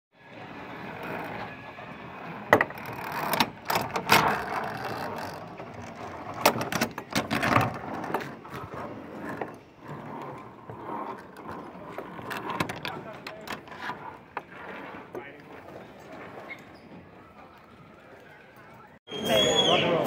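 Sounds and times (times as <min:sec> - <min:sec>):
trolley wheels rumbling on cable: 0:00.2 - 0:19.0.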